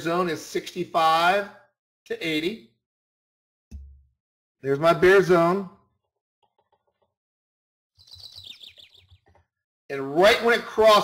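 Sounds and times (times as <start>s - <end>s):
bird chirping: 8.0s - 9.5s.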